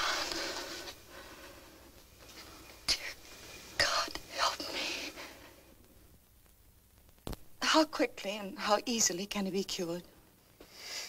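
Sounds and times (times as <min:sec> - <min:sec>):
person whispering: 0:03.8 - 0:05.2.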